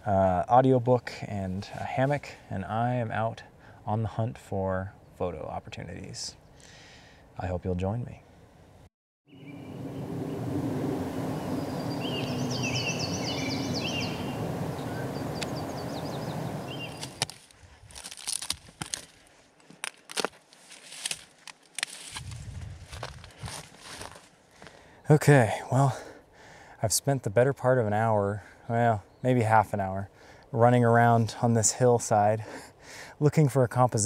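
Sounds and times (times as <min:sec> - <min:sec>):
outdoor background noise: 0:00.0 - 0:34.0
bird singing: 0:09.3 - 0:17.2
footsteps through brush and gravel: 0:16.8 - 0:24.8.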